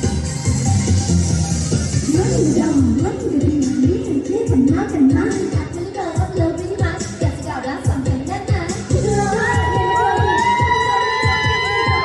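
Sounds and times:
pop song kick-drum beat: 0:00.0 - 0:12.0
fans screaming: 0:09.2 - 0:12.0.

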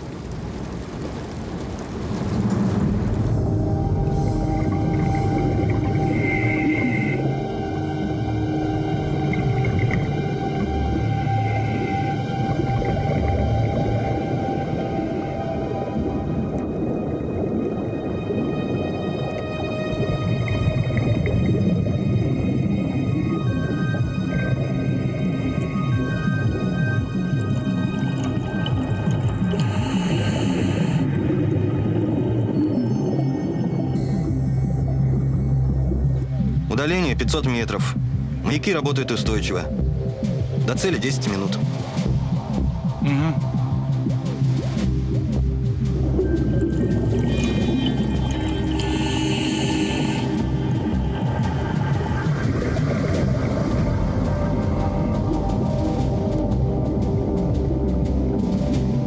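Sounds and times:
tense droning film score music: 0:00.0 - 0:59.0.

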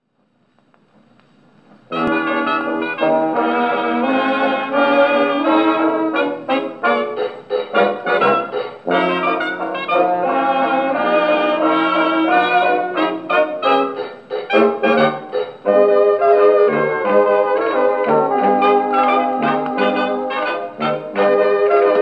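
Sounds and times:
record needle noise: 0:00.0 - 0:22.0
brass dance band playing: 0:01.9 - 0:22.0.

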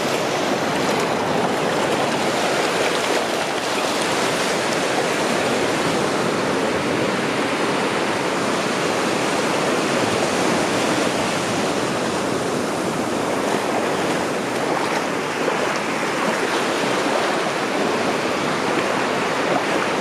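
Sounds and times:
surf washing up sand: 0:00.0 - 0:20.0.

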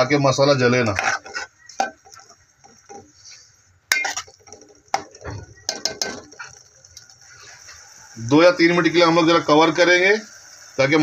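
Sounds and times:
spoon stirring curry in metal pot: 0:00.7 - 0:07.4
spoon knocking against pot: 0:03.9 - 0:06.5.

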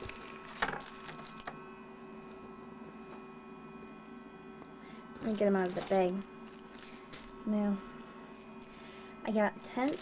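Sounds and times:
plastic bags rustling: 0:00.0 - 0:01.5, 0:05.2 - 0:08.8, 0:09.6 - 0:10.0
faint steady hum: 0:00.0 - 0:10.0.

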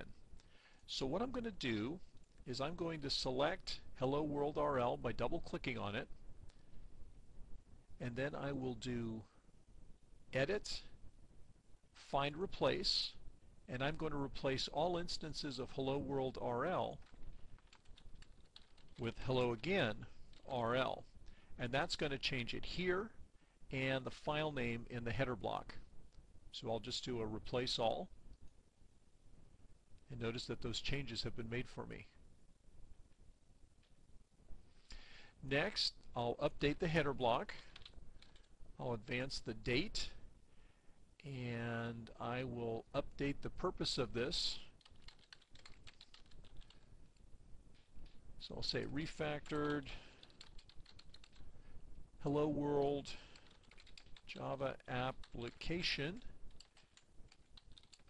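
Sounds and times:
keyboard typing: 0:16.9 - 0:19.1, 0:37.7 - 0:38.5, 0:44.8 - 0:46.9, 0:49.4 - 0:51.5, 0:53.4 - 0:54.3, 0:55.2 - 0:58.0.

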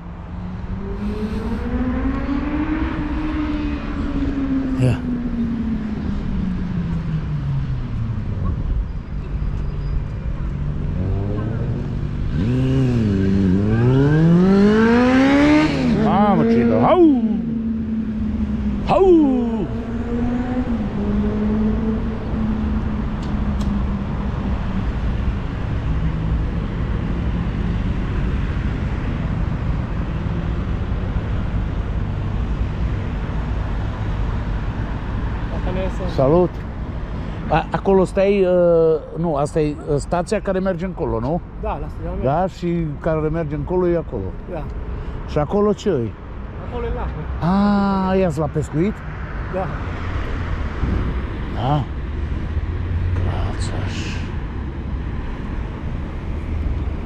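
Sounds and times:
steady low traffic rumble: 0:00.0 - 0:57.0
vehicle engines passing: 0:00.0 - 0:57.0.

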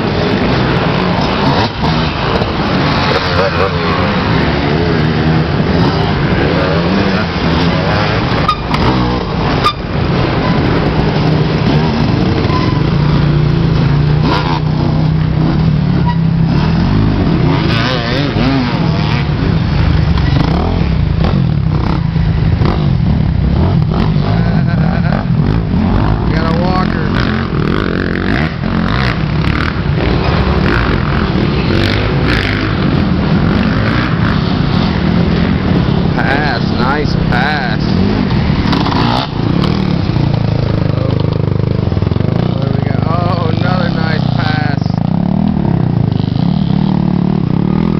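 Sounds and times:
dirt bike engines revving: 0:00.0 - 0:47.9.

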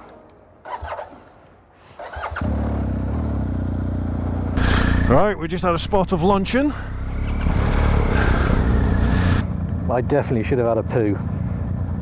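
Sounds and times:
motorcycle engine starting and idling: 0:00.6 - 0:12.0.

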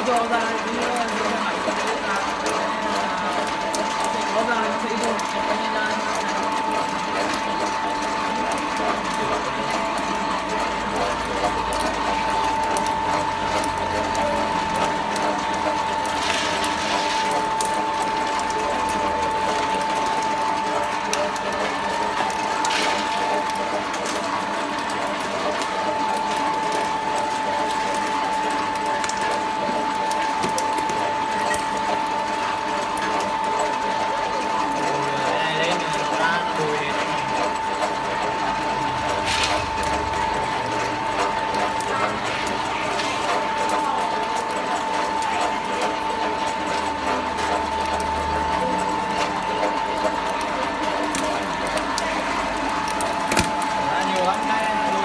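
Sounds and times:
oil press mechanical clatter: 0:00.0 - 0:55.0.

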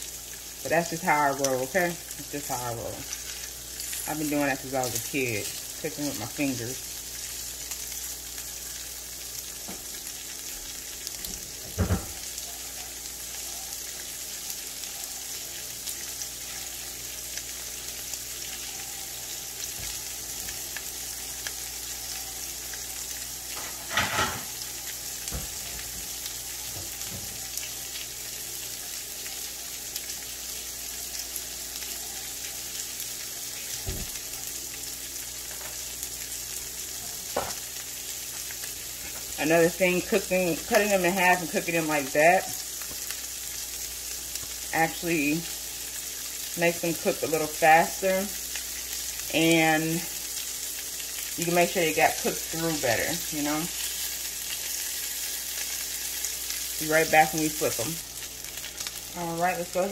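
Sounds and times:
sausages sizzling in a pan: 0:00.0 - 0:59.9.

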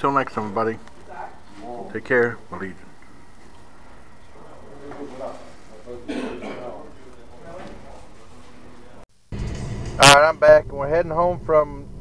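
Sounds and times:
man clearing his throat: 0:06.0 - 0:06.9.

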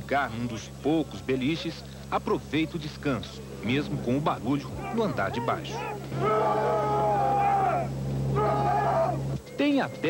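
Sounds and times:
turboprop engines droning: 0:00.0 - 0:10.0.

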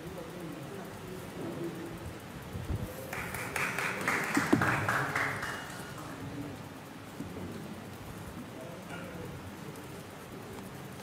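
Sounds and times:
audience applause: 0:03.1 - 0:06.4.

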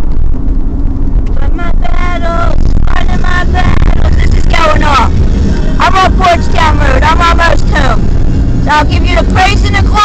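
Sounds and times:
car interior road rumble: 0:00.0 - 0:10.0.

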